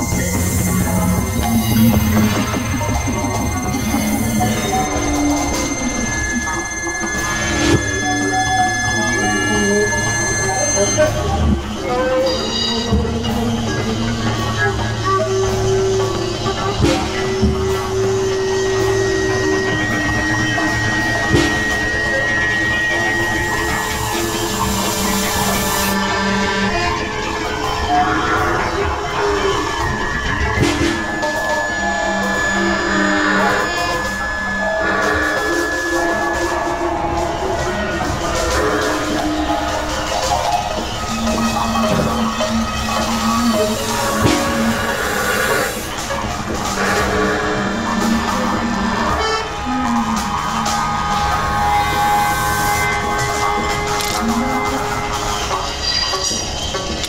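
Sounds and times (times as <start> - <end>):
industrial jazz music: 0.0 - 57.0.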